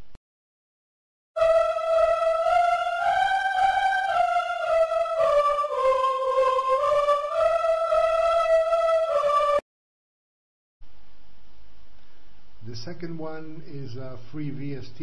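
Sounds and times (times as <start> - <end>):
women's choir singing held notes: 1.4 - 9.6.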